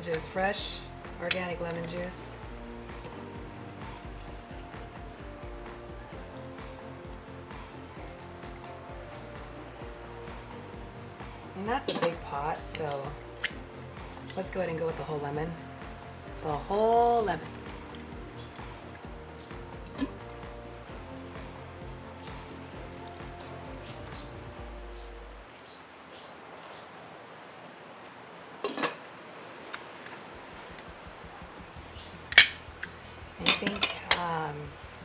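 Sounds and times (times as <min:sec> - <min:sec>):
soft background music: 0:00.0 - 0:25.5, 0:30.3 - 0:35.0
kitchen utensils clinking on pot: 0:33.4 - 0:34.4.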